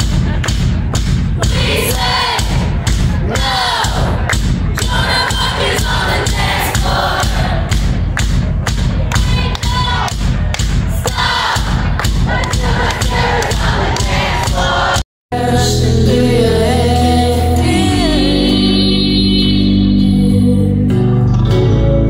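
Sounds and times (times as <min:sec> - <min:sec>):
heavy drum beat: 0:00.0 - 0:15.0
sung vocals: 0:12.5 - 0:22.0.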